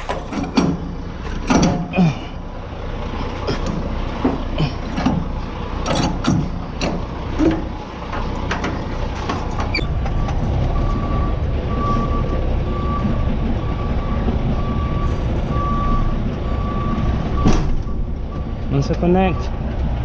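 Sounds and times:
diesel engine rumble: 0:00.0 - 0:20.0
truck reversing alarm beeping: 0:00.8 - 0:19.6.

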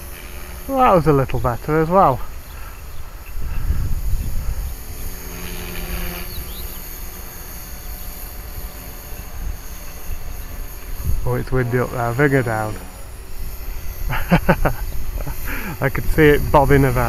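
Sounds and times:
rc helicopter motor hum: 0:00.0 - 0:17.0
wind buffeting microphone: 0:00.8 - 0:06.2, 0:09.4 - 0:12.0, 0:12.6 - 0:17.0.

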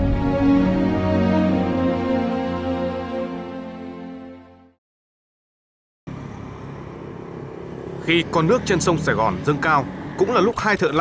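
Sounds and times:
engine running: 0:06.1 - 0:11.0.

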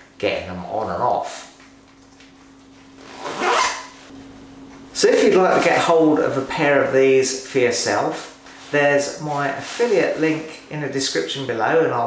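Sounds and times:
zip rasp on overtrousers: 0:03.0 - 0:04.1.

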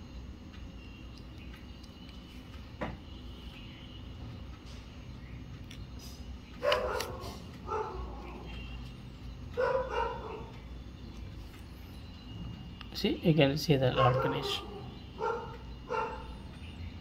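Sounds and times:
faint background hum: 0:00.0 - 0:17.0
dog barking: 0:06.6 - 0:08.4, 0:09.6 - 0:10.5, 0:13.9 - 0:16.3.

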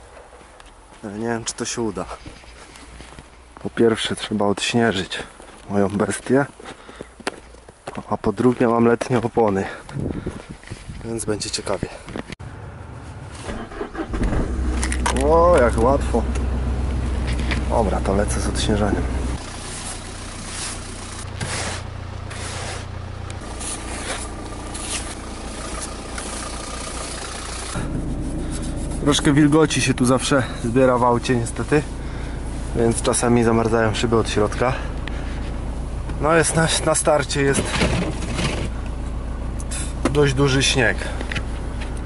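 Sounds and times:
car engine idling: 0:12.4 - 0:42.0
steady low hum: 0:14.0 - 0:42.0
snow brush scraping: 0:19.4 - 0:29.2.

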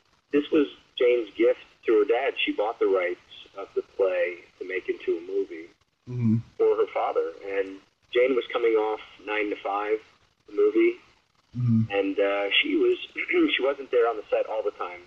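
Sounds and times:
man talking: 0:00.4 - 0:11.0, 0:11.6 - 0:15.0.

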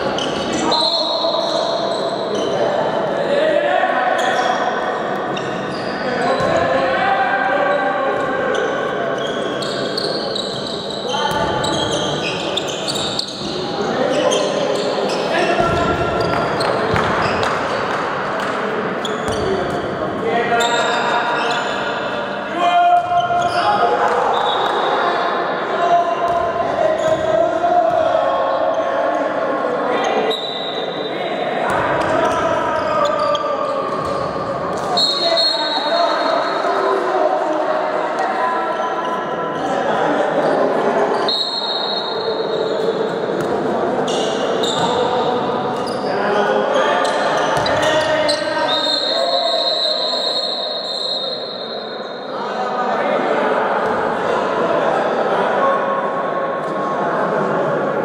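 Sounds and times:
ball bouncing on hall floor: 0:15.5 - 0:18.6.

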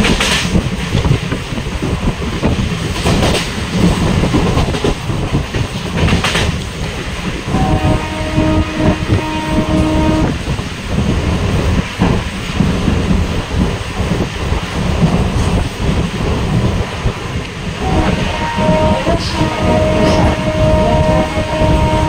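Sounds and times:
train wheels rumbling on track: 0:00.0 - 0:22.0
locomotive horn: 0:07.5 - 0:10.4, 0:17.8 - 0:22.0.

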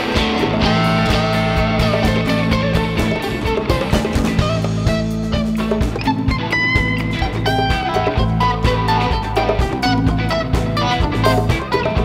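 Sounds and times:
bass notes: 0:00.0 - 0:12.0
electric guitar: 0:00.0 - 0:12.0
steady drum beat: 0:00.0 - 0:12.0.

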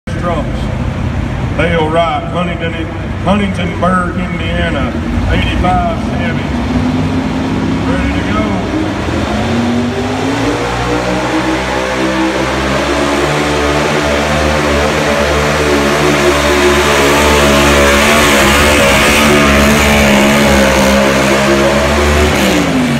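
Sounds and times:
truck engine revving under load: 0:04.4 - 0:22.9.

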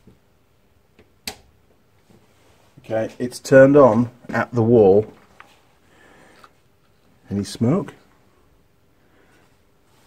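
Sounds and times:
soft rustle: 0:02.0 - 0:07.2, 0:09.2 - 0:10.0.

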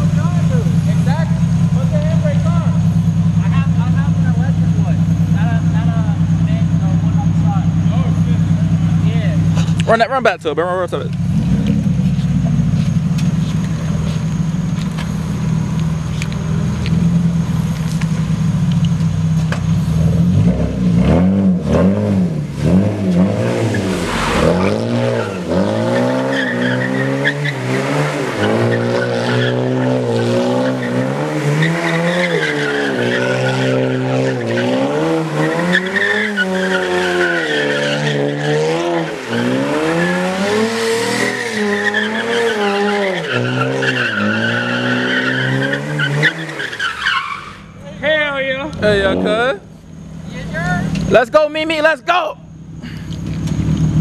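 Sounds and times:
car engine revving: 0:00.0 - 0:51.2
tyres squealing: 0:22.7 - 0:52.2.

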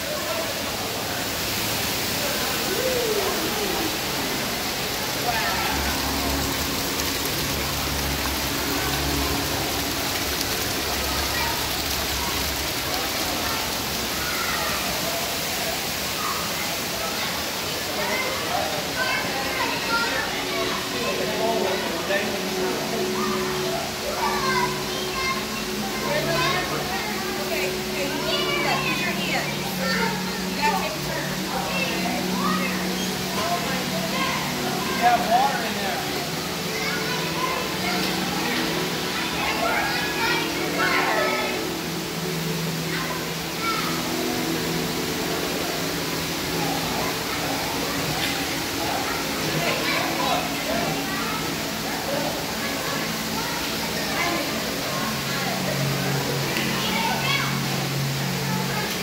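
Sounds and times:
crowd chatter: 0:00.0 - 0:59.0
running water rushing: 0:00.0 - 0:59.0.

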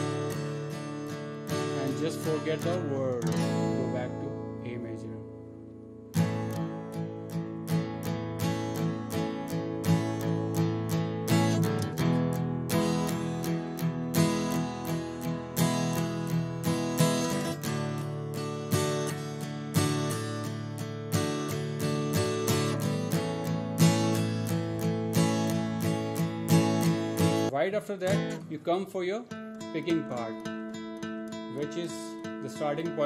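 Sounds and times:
acoustic guitar strumming chords: 0:00.0 - 0:33.0.

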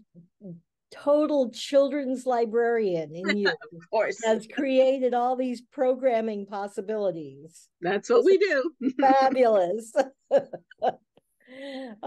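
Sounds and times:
drawn-out voice sound: 0:03.2 - 0:04.4
woman laughing: 0:03.3 - 0:03.8, 0:08.8 - 0:11.1.

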